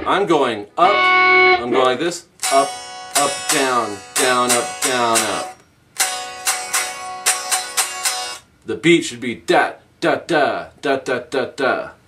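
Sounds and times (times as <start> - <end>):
electric guitar strumming: 0.8 - 8.5.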